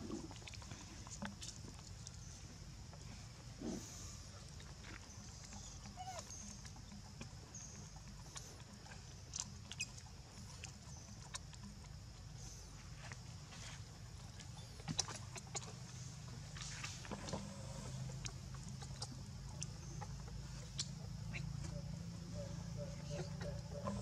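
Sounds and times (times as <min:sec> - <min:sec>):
steady low hum: 0:00.0 - 0:24.0
faint chirps: 0:00.7 - 0:24.0.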